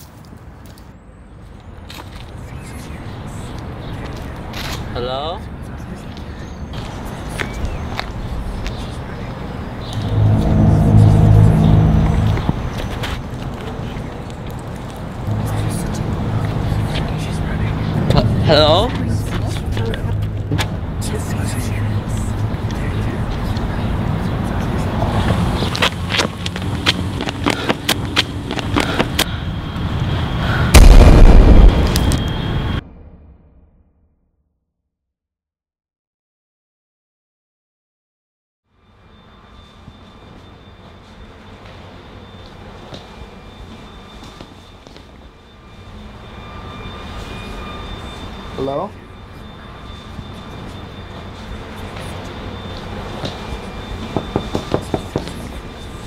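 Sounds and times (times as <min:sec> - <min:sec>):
car engine rumbling: 0:08.2 - 0:30.2
faint thin high whine: 0:08.4 - 0:13.3, 0:29.3 - 0:32.8, 0:38.7 - 0:56.0.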